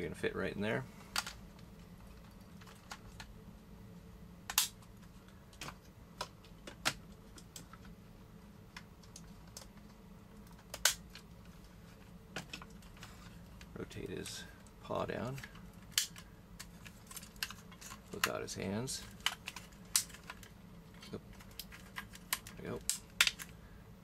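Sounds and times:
faint steady hum: 0:00.0 - 0:24.0.

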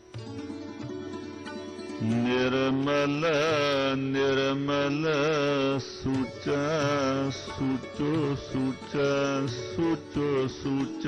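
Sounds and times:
person singing long ornamented notes: 0:00.0 - 0:11.0.

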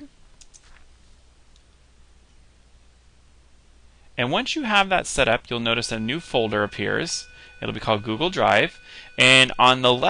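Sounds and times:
faint computer clicks: 0:00.4 - 0:00.8.

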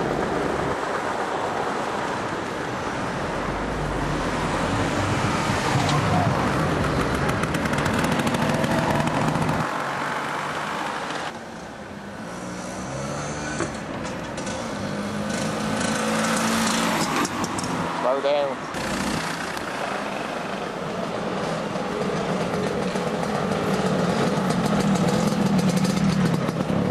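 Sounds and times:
wind rushing over microphone: 0:00.0 - 0:09.6
scooter engine running: 0:06.6 - 0:09.7, 0:21.7 - 0:26.9.

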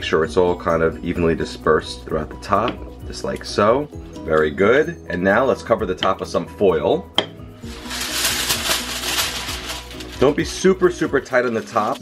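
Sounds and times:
aluminium foil crinkling: 0:07.6 - 0:12.0.

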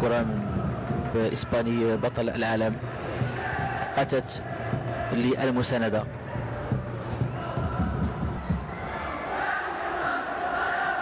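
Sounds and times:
crowd voices din: 0:00.0 - 0:11.0
crowd chanting: 0:02.8 - 0:11.0.

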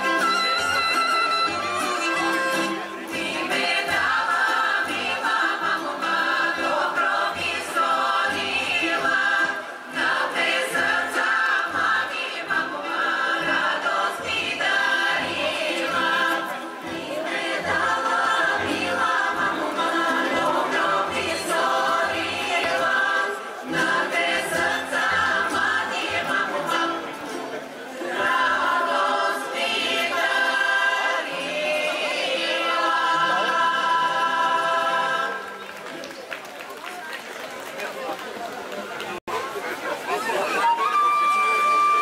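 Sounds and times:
women's choir singing in harmony: 0:03.0 - 0:27.2, 0:27.9 - 0:35.6.

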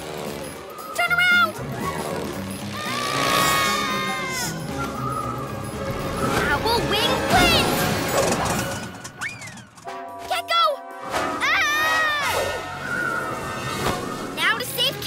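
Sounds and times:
cartoon action music: 0:00.0 - 0:15.0
gliding vocal cries: 0:01.6 - 0:05.8.

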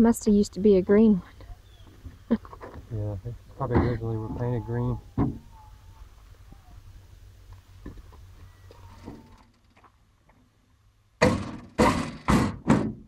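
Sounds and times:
metal panel bangs and rattles: 0:11.2 - 0:13.0.

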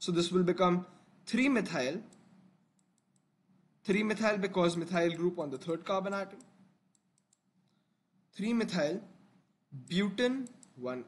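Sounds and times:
man talking: 0:00.0 - 0:02.1, 0:03.8 - 0:06.4, 0:08.4 - 0:09.1, 0:09.8 - 0:11.0.

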